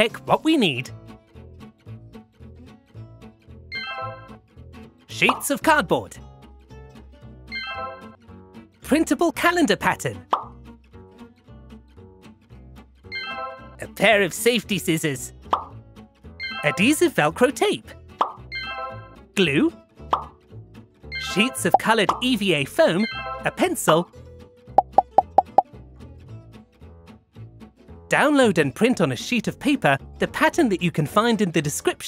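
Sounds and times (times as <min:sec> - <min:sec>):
light background music: 0:00.0 - 0:32.0
cartoon pop: 0:10.3 - 0:10.5, 0:24.8 - 0:25.6.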